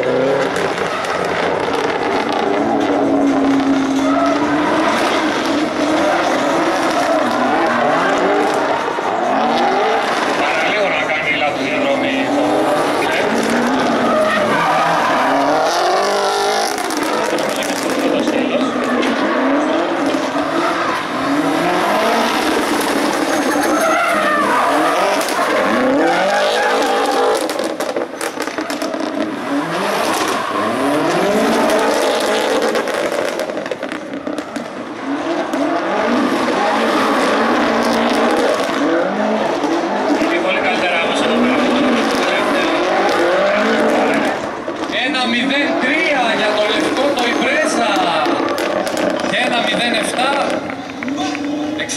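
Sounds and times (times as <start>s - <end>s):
car engine revving hard: 0.0s - 51.9s
tires squealing and skidding: 0.0s - 51.9s.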